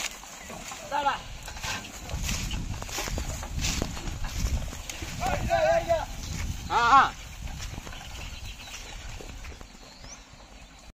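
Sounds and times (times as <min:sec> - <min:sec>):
bullock hooves clopping: 0:00.0 - 0:10.9
cart knocking: 0:00.0 - 0:10.9
man shouting: 0:06.7 - 0:07.1.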